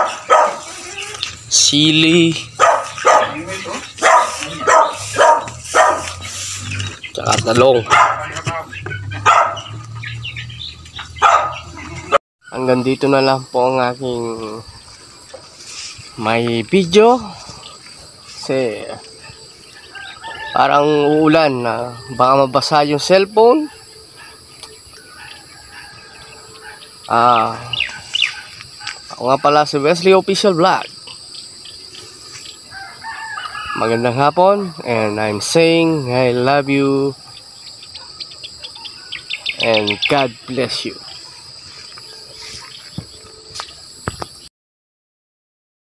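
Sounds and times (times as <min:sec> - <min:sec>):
dog barking: 0:00.0 - 0:00.9, 0:02.5 - 0:06.3, 0:07.8 - 0:08.4, 0:09.1 - 0:09.8, 0:11.1 - 0:12.2, 0:23.6 - 0:24.4, 0:26.6 - 0:26.9, 0:27.9 - 0:29.0
insects high-pitched drone: 0:00.0 - 0:44.5
insects short high chirps: 0:00.0 - 0:44.5.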